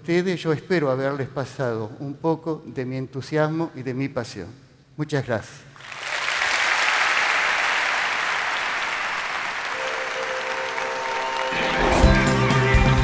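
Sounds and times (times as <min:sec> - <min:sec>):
audience applauding: 0:05.8 - 0:13.0
music with steady bass line: 0:11.5 - 0:13.0.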